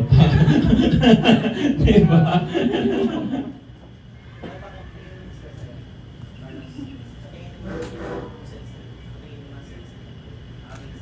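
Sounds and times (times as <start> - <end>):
laughter: 0.0 - 3.6.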